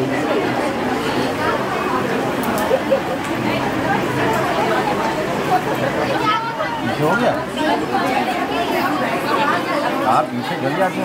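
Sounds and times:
women chattering in a crowd: 0:00.0 - 0:11.0.

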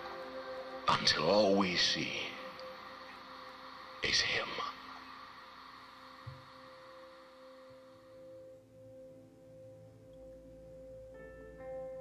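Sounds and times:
held ambient music note: 0:00.0 - 0:12.0.

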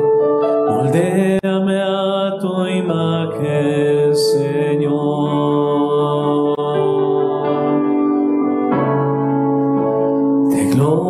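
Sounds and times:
electric keyboard chords: 0:00.0 - 0:11.0
man singing a hymn: 0:00.7 - 0:08.2, 0:10.5 - 0:11.0.

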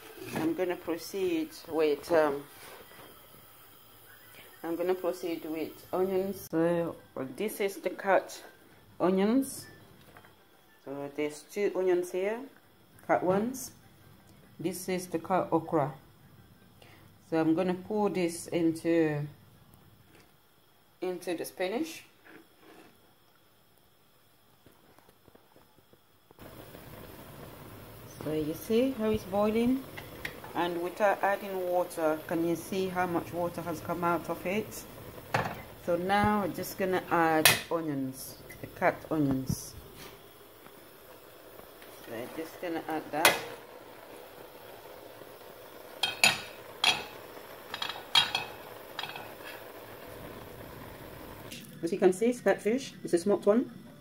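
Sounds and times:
pot of spinach boiling: 0:21.8 - 0:54.0.

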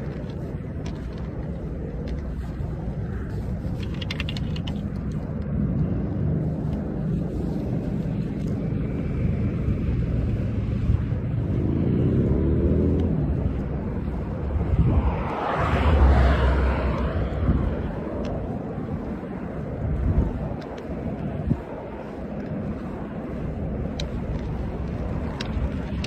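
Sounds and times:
road traffic rumble: 0:00.0 - 0:26.0
vehicle passing: 0:00.0 - 0:26.0.

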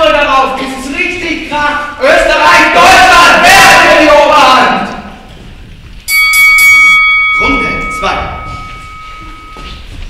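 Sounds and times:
bell strikes ringing: 0:06.1 - 0:10.0.

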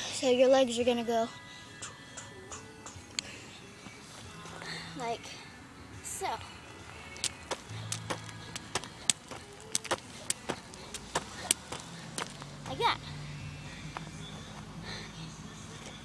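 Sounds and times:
jump rope slapping the ground: 0:07.2 - 0:12.4.

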